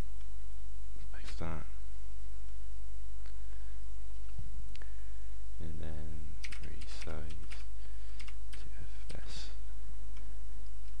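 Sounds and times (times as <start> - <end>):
keyboard typing: 6.4 - 9.2.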